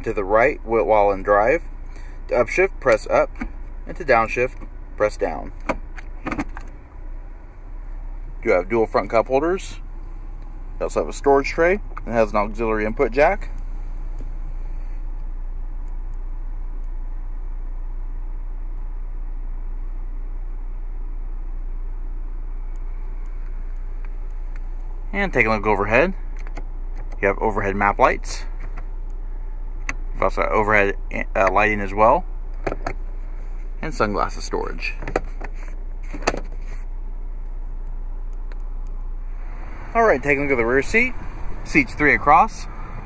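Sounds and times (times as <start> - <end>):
car cabin rumble and hiss: 0.0 - 43.0
compartment knocking shut: 5.6 - 6.7, 35.0 - 36.5.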